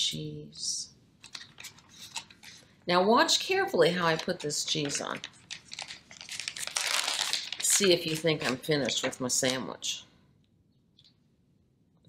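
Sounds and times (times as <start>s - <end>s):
plastic package crinkling: 1.2s - 2.7s, 4.0s - 9.7s.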